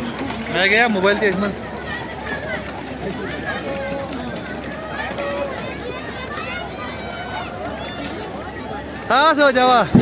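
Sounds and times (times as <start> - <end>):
background hubbub: 0.0 - 10.0
children calling and chattering: 0.0 - 10.0.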